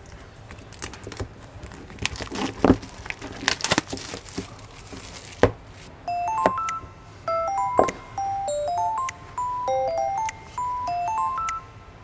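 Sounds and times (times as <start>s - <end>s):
wrapping crinkling and rustling: 0.0s - 5.9s
plinking bell-like music: 6.1s - 12.0s.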